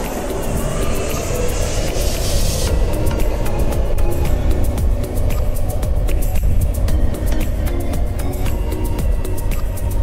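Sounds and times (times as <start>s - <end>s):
music with heavy bass beat: 0.0s - 10.0s.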